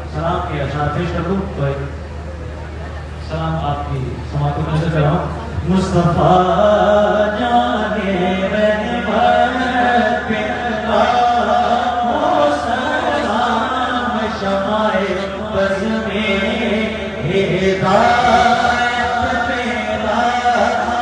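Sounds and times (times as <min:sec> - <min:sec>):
man chanting a devotional recitation: 0:03.3 - 0:21.0.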